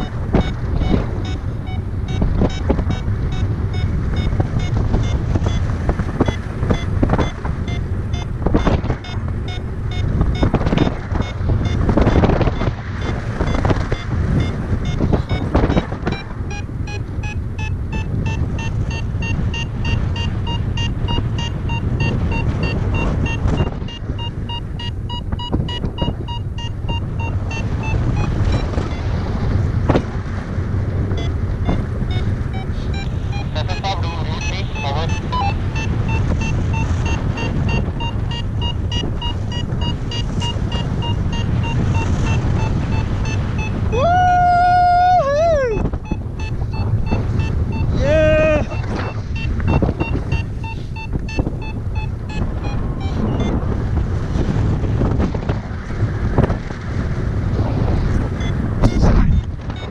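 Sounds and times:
variometer beeping rapidly: 0:00.0 - 0:44.2, 0:45.5 - 0:55.6, 0:58.1 - 0:59.9
wind rushing across microphone: 0:00.0 - 0:59.9.

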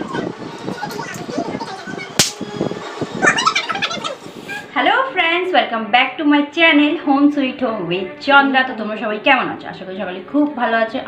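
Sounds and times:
woman speaking: 0:04.7 - 0:11.0.

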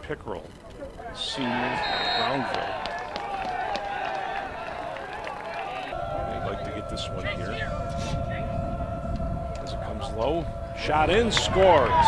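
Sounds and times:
people calling out: 0:01.0 - 0:12.0
low rumble: 0:05.9 - 0:12.0
steady tone: 0:05.9 - 0:12.0.

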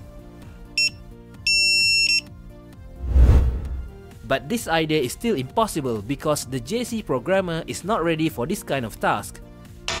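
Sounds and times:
quiet background music: 0:00.0 - 0:10.0
deep whooshing hit: 0:03.0 - 0:04.0.

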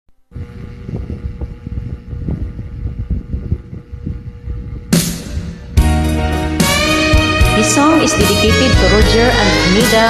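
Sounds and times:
faint steady hum: 0:00.1 - 0:10.0
low rumbling noise: 0:00.3 - 0:10.0.

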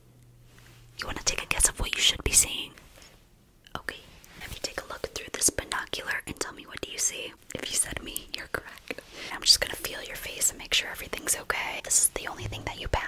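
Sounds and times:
close whispering: 0:03.7 - 0:13.0.

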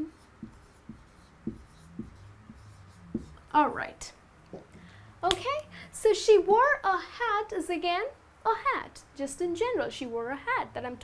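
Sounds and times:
marker writing on whiteboard: 0:00.0 - 0:03.7.

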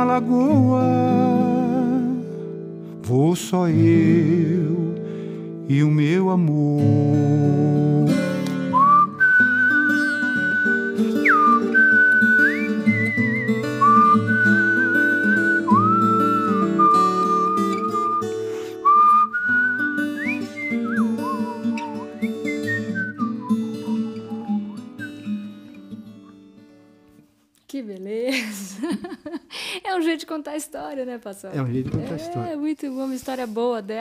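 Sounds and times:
man whistling a melody: 0:08.1 - 0:26.4.

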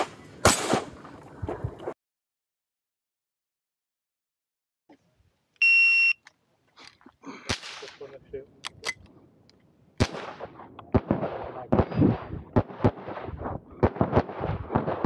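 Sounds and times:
pistol shots: 0:00.0 - 0:00.9, 0:07.5 - 0:08.1, 0:10.0 - 0:15.0
shot timer beep: 0:05.6 - 0:06.2.

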